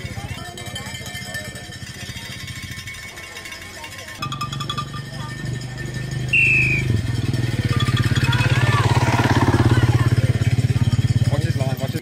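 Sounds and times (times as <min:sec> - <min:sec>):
engine running: 0:00.0 - 0:12.0
high whistle-like tone: 0:06.3 - 0:07.0.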